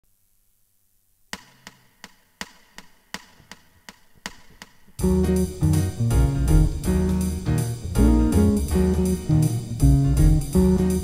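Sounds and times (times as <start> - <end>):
music: 1.4 - 11.0.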